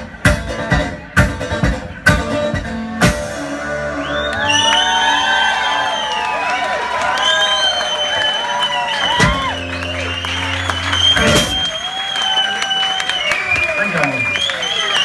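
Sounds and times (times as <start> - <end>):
audience whooping and cheering: 3.6 - 15.0.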